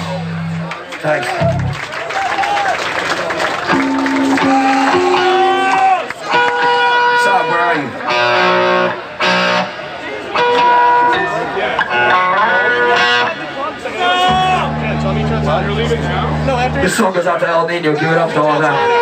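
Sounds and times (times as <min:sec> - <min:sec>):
electric guitar notes and bends: 0:00.0 - 0:00.8, 0:01.4 - 0:01.8, 0:03.7 - 0:05.6, 0:14.2 - 0:17.1
voices: 0:10.0 - 0:19.0.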